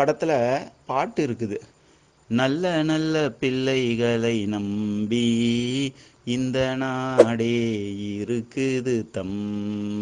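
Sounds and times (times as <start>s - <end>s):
man chanting long tones: 2.3s - 10.0s.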